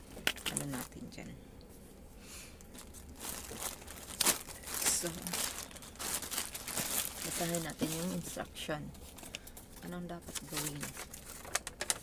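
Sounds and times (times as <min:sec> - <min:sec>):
plastic packaging crinkling: 0:00.0 - 0:01.1, 0:02.7 - 0:12.0.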